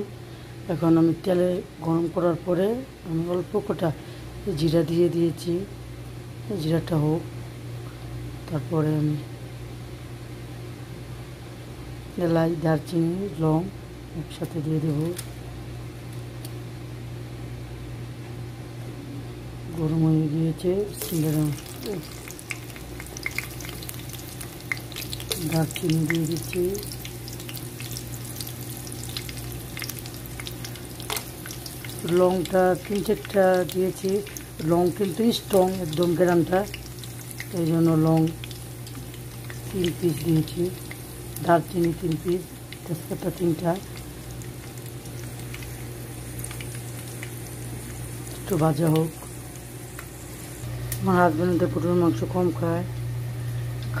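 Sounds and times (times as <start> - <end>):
steady low hum: 0.0 - 54.0
spices sizzling in hot oil: 20.9 - 51.3.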